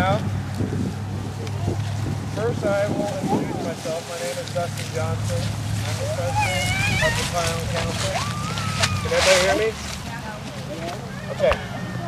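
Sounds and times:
wind rumble on microphone: 0.0s - 4.2s.

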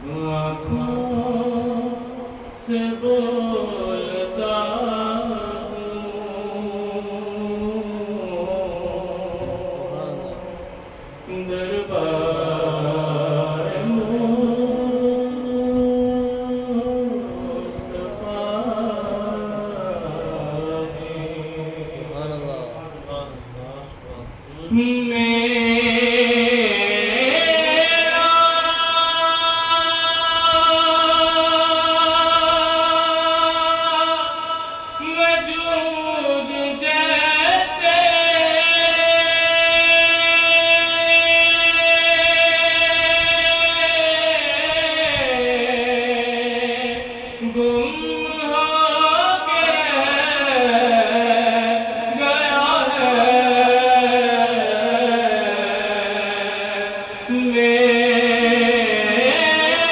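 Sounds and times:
man singing unaccompanied: 0.0s - 59.9s.

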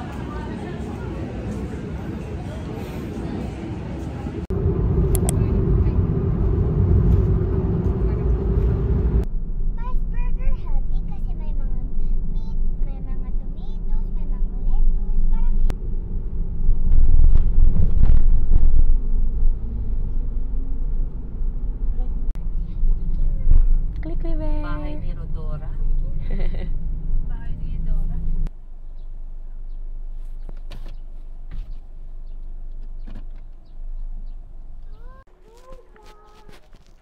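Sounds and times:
car tyre and engine rumble: 3.4s - 37.0s.

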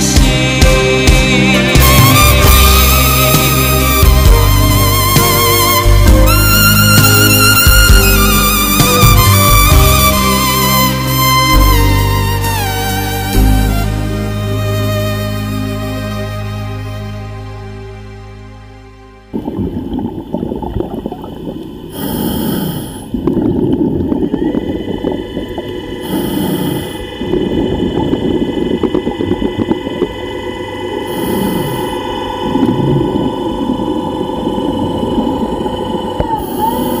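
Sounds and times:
machinery hum: 18.9s - 37.0s
bubbling exhalation: 19.3s - 37.0s
regulator inhalation hiss: 21.8s - 23.2s, 25.0s - 37.0s.

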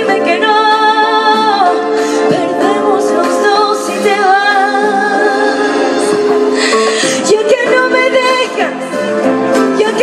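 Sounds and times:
backing music: 0.0s - 10.0s
woman singing into microphone: 0.0s - 10.0s.

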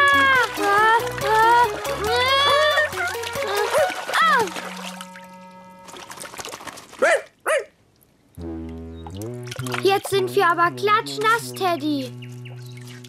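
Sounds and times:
light children's music: 0.0s - 5.9s, 9.7s - 12.2s
splash: 0.0s - 7.1s, 9.1s - 10.2s
cartoon dog barking: 7.0s - 7.7s.

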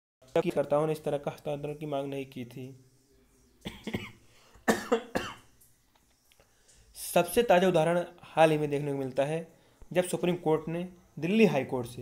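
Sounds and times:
man coughing: 3.7s - 5.4s.

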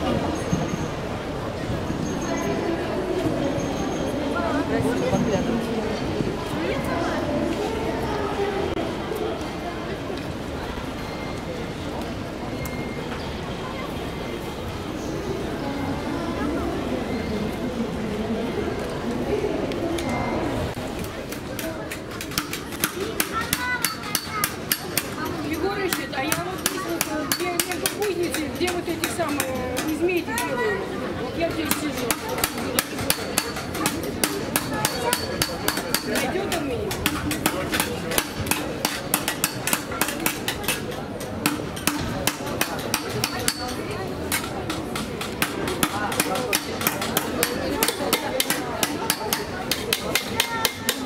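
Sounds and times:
hammers tapping metal: 22.1s - 30.5s, 31.5s - 51.0s.

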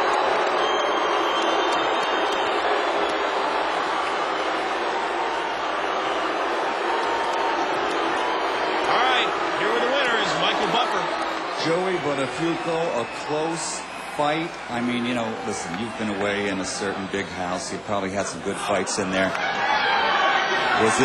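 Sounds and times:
crowd shouting: 0.0s - 21.0s.

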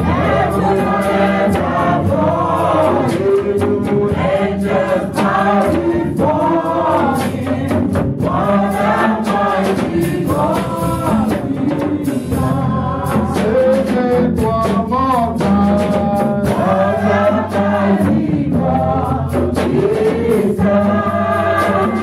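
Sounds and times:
gospel singers with band: 0.0s - 22.0s.

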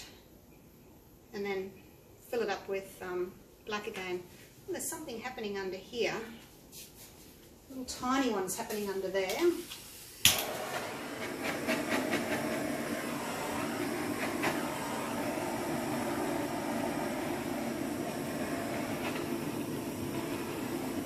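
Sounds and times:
torch flame hissing: 9.7s - 21.0s.

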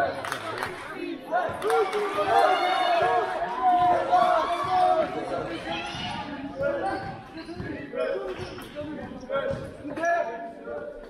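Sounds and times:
voices of players and spectators: 0.0s - 11.0s
basketball bouncing on hall floor: 3.6s - 10.0s.

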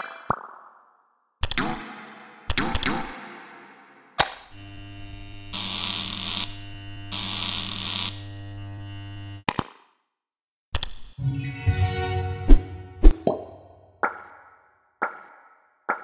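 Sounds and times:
loud buzzing bursts: 4.5s - 9.4s.

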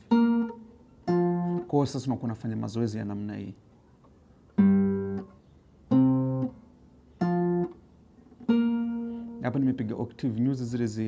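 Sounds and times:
plucked guitar octaves: 0.0s - 2.6s, 4.5s - 10.6s.

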